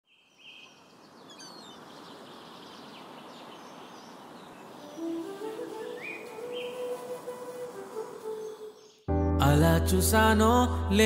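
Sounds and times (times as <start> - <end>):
high bird chirps: 0.1 - 7.1.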